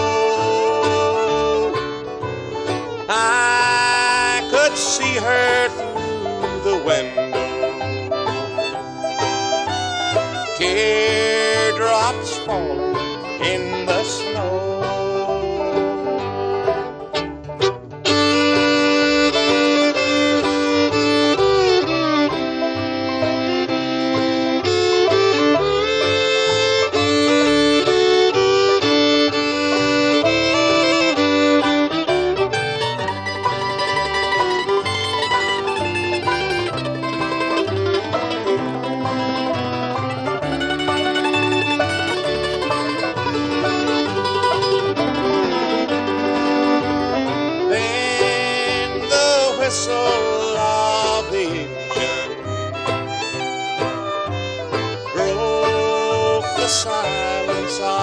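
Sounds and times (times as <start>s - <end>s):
banjo: 0.0s - 58.0s
bass: 0.0s - 58.0s
fiddle: 0.0s - 58.0s
guitar: 0.0s - 58.0s.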